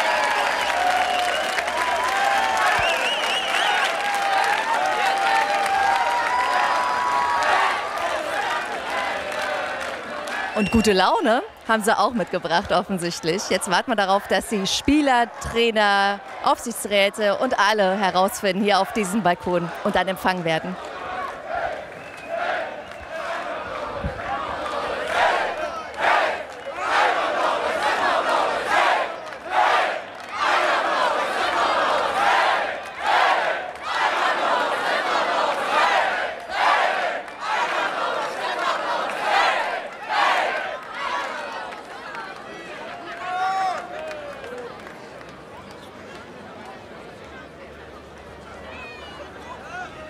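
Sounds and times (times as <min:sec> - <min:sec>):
crowd chanting and singing: 0:06.6 - 0:42.9.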